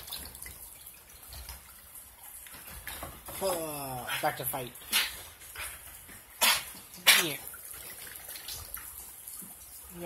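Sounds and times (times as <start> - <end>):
rain patter and drip: 0.0 - 10.0.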